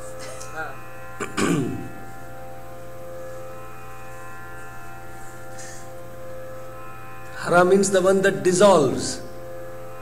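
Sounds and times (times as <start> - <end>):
musical drone of held notes: 0.0 - 10.0.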